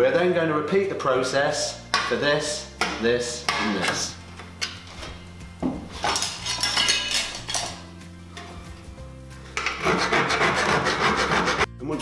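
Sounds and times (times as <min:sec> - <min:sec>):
hand file rasping on metal: 0:09.6 - 0:11.7.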